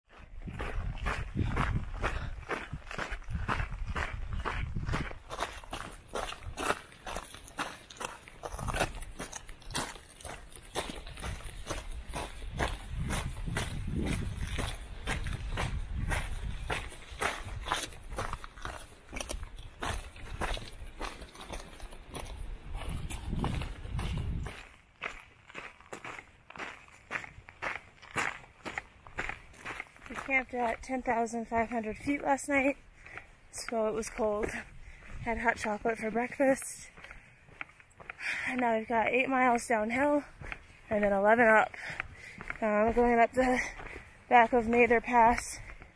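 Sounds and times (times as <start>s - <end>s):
footsteps on rocky trail: 0.1s - 45.9s.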